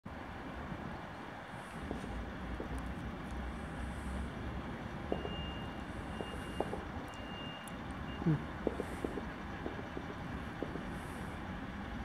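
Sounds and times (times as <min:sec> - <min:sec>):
railbus engine rumbling: 0:00.1 - 0:12.0.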